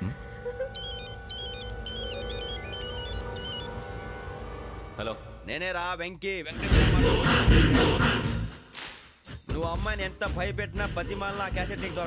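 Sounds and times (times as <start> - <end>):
film score drone: 0.0 - 8.3
phone ringtone beeping melody: 0.5 - 4.0.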